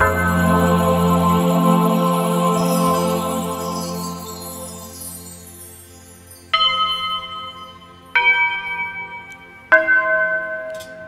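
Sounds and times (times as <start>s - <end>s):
altar bells ringing: 0.0s - 11.0s.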